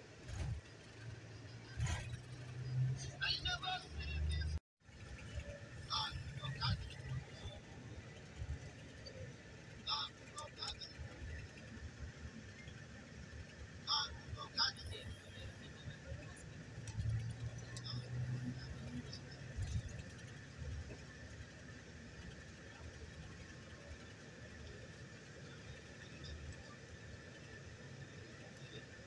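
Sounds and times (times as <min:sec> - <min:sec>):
coach engine and road rumble: 0:00.0 - 0:29.0.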